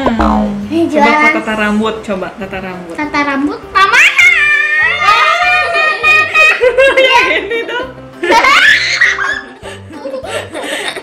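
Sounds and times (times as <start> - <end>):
background music with steady beat: 0.0 - 11.0
girl and woman laughing: 6.1 - 11.0.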